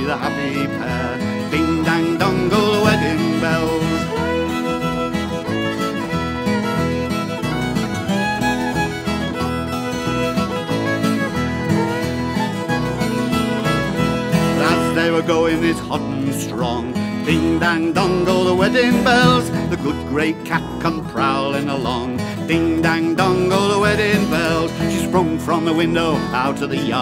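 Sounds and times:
acoustic guitar accompaniment: 0.0s - 27.0s
fiddle playing a tune: 0.0s - 27.0s.

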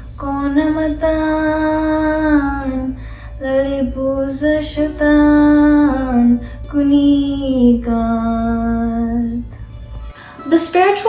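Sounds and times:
girl singing slow devotional verse: 0.0s - 11.0s.

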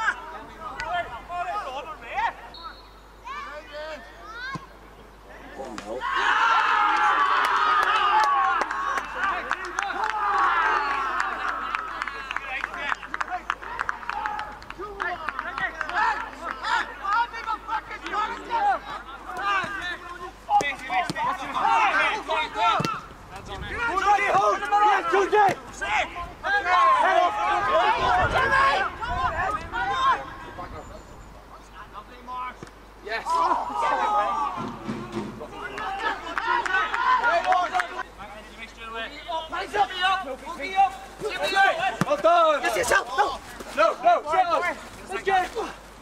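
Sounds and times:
men shouting and cheering: 0.0s - 2.5s, 5.3s - 30.6s, 33.0s - 45.8s.

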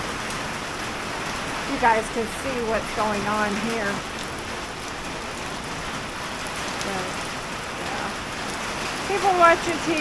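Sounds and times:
heavy rain on grass and pavement: 0.0s - 10.0s.

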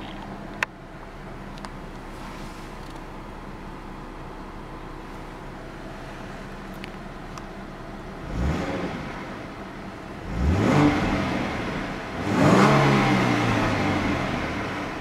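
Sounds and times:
car engine revving: 8.1s - 15.0s.

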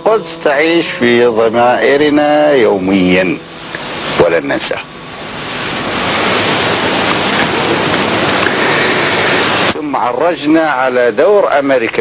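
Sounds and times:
audience applauding: 6.8s - 9.4s.

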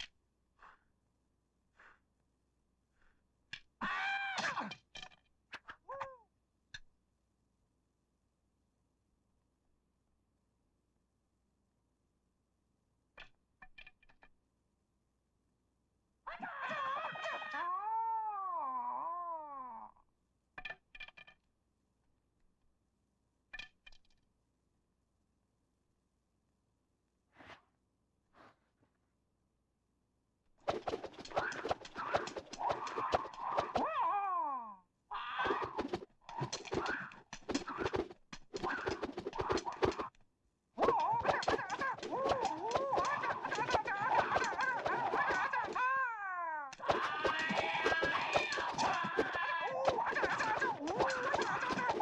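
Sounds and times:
man yowling fight cries: 16.3s - 19.9s, 33.8s - 35.5s, 40.8s - 52.0s
nunchaku swishing and clacking: 30.6s - 33.9s, 35.4s - 40.2s, 40.8s - 45.8s, 46.7s - 52.0s
man's long wailing battle cry: 33.7s - 34.8s, 40.8s - 52.0s.

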